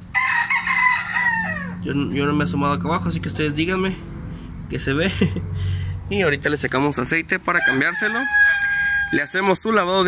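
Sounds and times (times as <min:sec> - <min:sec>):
rooster crowing: 0:00.1 - 0:01.9, 0:07.5 - 0:09.6.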